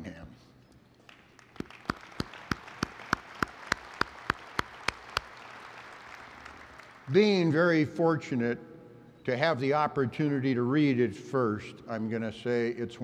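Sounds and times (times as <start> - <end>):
loud even hand clapping: 1.0 - 7.2
audience applauding: 1.1 - 7.2.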